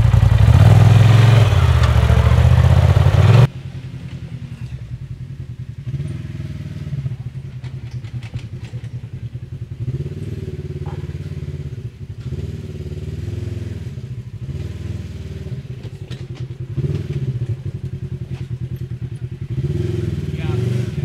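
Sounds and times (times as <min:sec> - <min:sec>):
utility vehicle engine revving: 0:00.0 - 0:21.0.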